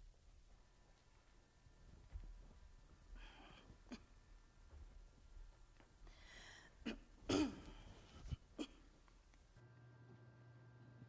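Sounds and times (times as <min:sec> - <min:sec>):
person clearing throat: 0:06.8 - 0:09.0.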